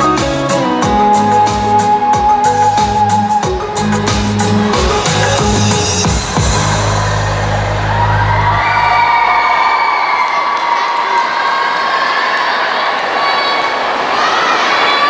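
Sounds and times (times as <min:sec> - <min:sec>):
music with heavy bass line: 0:00.0 - 0:08.6
audience cheering and whooping: 0:06.1 - 0:15.0.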